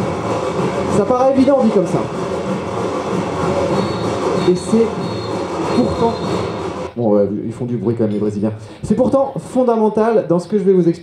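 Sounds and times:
samba percussion over loudspeakers: 0.0s - 7.0s.

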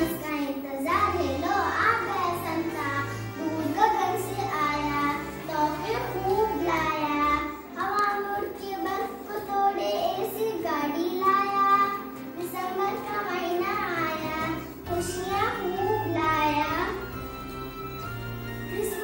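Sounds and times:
instrumental accompaniment with bass: 13.7s - 19.0s.

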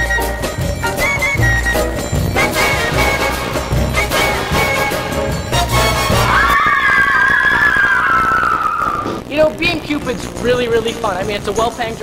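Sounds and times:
girls screaming: 6.2s - 9.2s.

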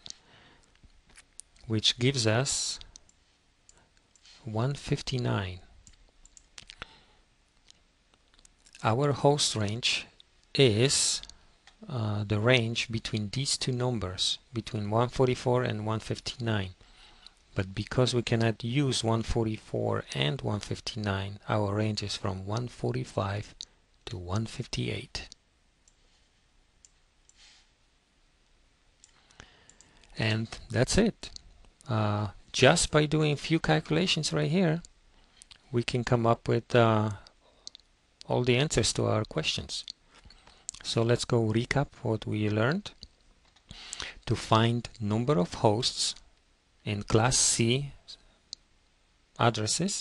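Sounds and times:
keyboard and mouse clicks: 5.8s - 6.9s.

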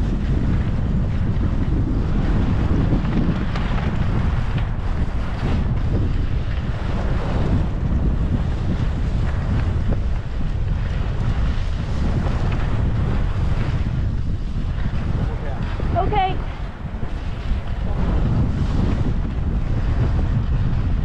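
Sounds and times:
skis sliding on snow: 0.0s - 21.0s
wind buffeting microphone: 0.0s - 21.0s.

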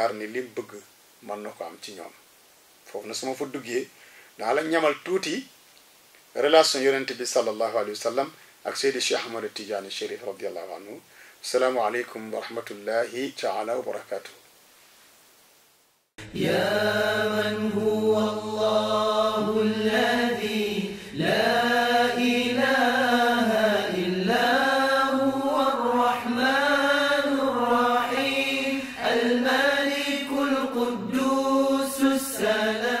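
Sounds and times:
breaths between phrases: 3.9s - 4.5s, 8.3s - 8.7s, 11.0s - 11.5s, 20.9s - 21.2s, 28.7s - 29.1s
solo voice chanting: 16.2s - 33.0s.

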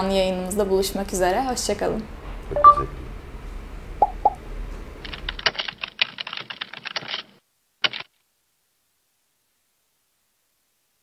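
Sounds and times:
short electronic blips: 2.5s - 3.0s.

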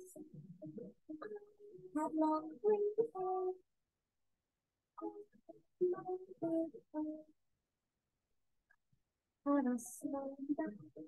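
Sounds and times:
person singing children's song: 2.0s - 3.6s, 5.8s - 7.3s, 9.5s - 11.0s.

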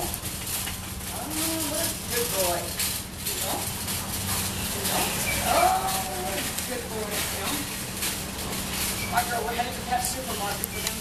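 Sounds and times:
indistinct voices: 1.1s - 11.0s.

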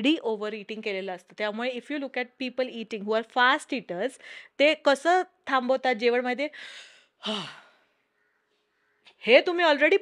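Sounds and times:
woman sighing: 7.2s - 7.8s.

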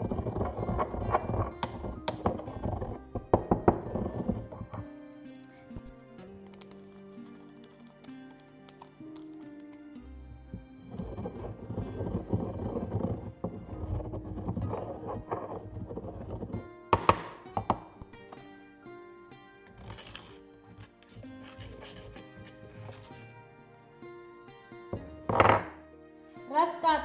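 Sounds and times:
mortar and pestle grinding spices: 0.0s - 4.9s, 5.7s - 18.5s, 19.7s - 23.3s
pestle knocking against mortar: 0.0s - 4.9s, 10.5s - 18.4s, 25.0s - 25.8s
background music: 0.0s - 27.0s.

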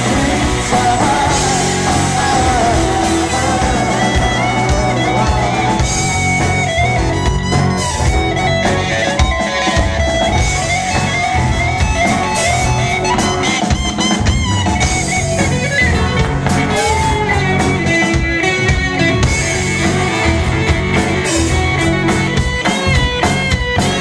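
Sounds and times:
drum kit: 0.0s - 24.0s
electric guitars: 0.0s - 24.0s.

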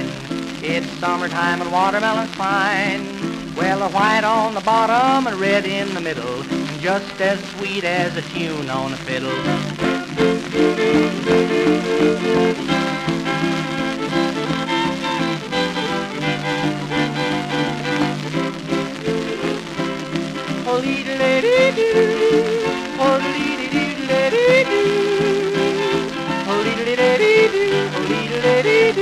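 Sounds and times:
old record song with strummed guitar: 0.0s - 29.0s
man yodeling: 20.7s - 29.0s.

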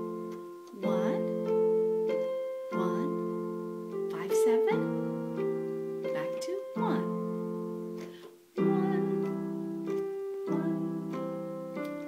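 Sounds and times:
digital piano playing chords: 0.0s - 12.0s.

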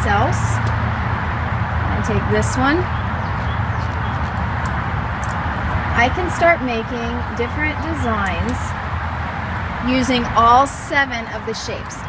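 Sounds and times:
distant road traffic: 0.0s - 12.0s.

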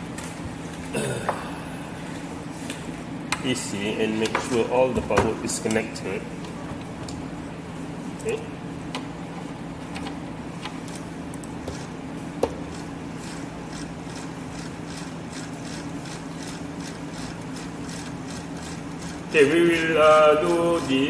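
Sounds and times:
low equipment hum: 0.0s - 21.0s.

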